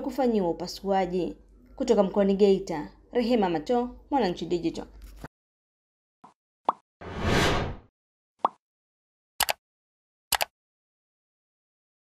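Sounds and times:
rushing whoosh: 7.0 - 7.8
quick double click: 10.3 - 10.5.

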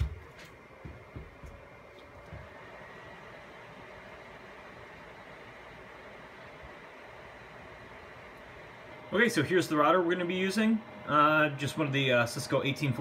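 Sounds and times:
cooling fans whirring: 0.0 - 13.0
faint high whine: 0.0 - 13.0.

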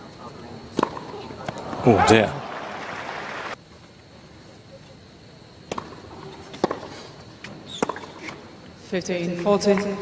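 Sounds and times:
tennis ball bouncing on hard court: 0.8 - 1.2, 5.7 - 6.9, 7.7 - 8.3
hush of stadium crowd: 1.5 - 3.6.

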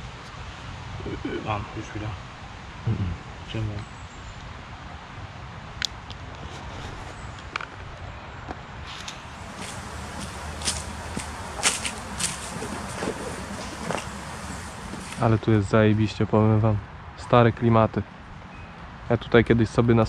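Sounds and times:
steady background noise: 9.0 - 16.3.

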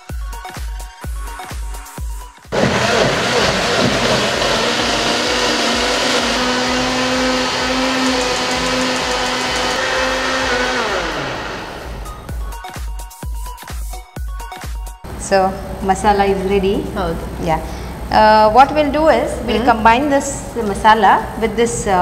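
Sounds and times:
blender motor grinding paste: 2.5 - 12.5.

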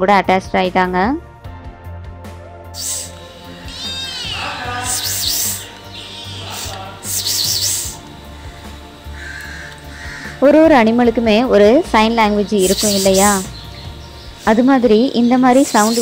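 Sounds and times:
low steady background: 2.7 - 16.0
crow cawing: 2.8 - 10.6
loud voice: 4.3 - 5.1.

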